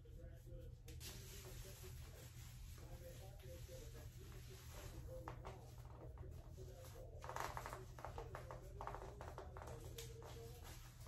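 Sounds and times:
fabric and hair rustling: 0.0s - 11.0s.

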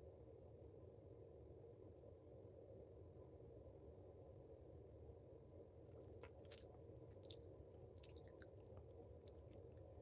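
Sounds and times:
lip and tongue clicks: 8.0s - 8.6s, 9.2s - 9.7s.

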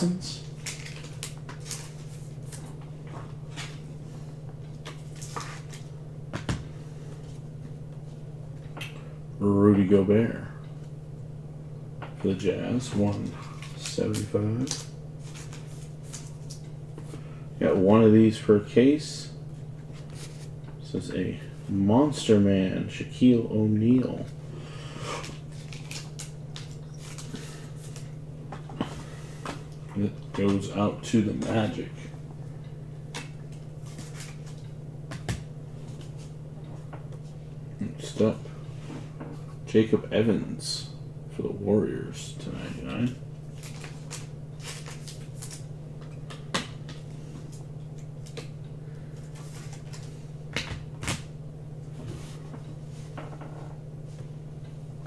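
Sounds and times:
low electrical hum: 0.0s - 55.0s
card packs crinkling and tapping: 0.5s - 3.8s, 12.7s - 17.2s, 25.2s - 31.8s, 43.0s - 47.1s.

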